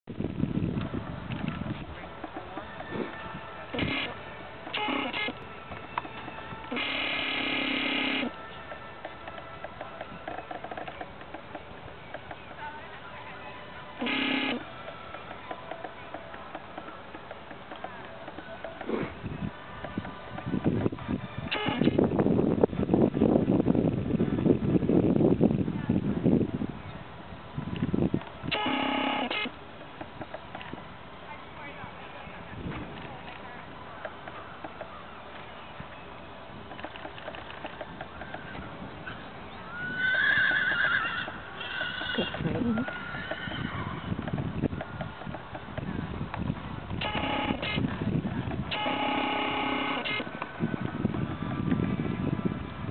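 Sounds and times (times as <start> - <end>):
faint outdoor background noise: 0.0 - 52.9
buzzing tones: 3.7 - 5.4, 6.0 - 8.5, 14.0 - 14.7, 21.5 - 22.0, 28.5 - 29.5, 47.0 - 48.0, 48.7 - 50.3.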